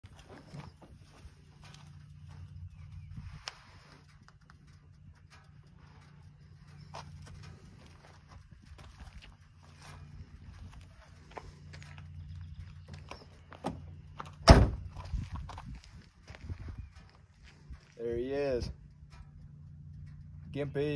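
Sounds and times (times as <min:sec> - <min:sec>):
footsteps crunching on gravel: 0:00.0 - 0:04.3, 0:06.0 - 0:18.1
steady low hum: 0:00.0 - 0:20.9
car rear hatch slamming: 0:14.4 - 0:14.9.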